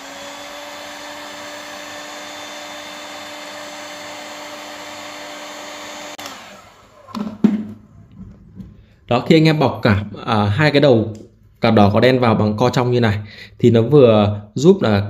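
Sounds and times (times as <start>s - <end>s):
heat gun blowing air: 0.0s - 7.3s
knocks: 7.1s - 8.7s.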